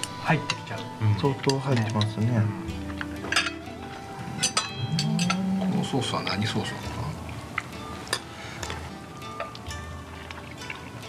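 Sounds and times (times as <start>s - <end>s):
background music with held notes: 0.0s - 11.0s
cutlery clinking against plates: 2.9s - 3.6s, 4.4s - 5.5s, 8.0s - 9.7s.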